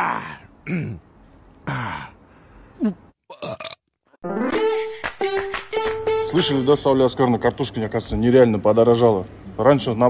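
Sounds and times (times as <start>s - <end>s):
person burping: 2.8s - 3.9s.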